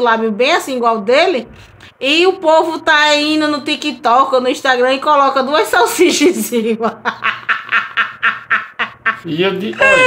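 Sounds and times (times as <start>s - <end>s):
stifled snickering laughter: 7.1s - 10.0s.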